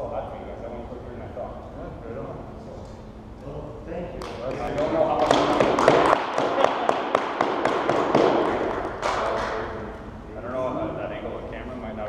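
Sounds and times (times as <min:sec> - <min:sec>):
small group clapping: 0:04.2 - 0:09.9.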